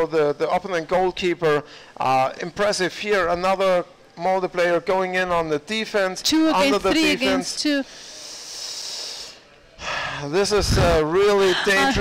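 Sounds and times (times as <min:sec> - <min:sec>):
man speaking: 0:00.0 - 0:07.8, 0:10.2 - 0:12.0.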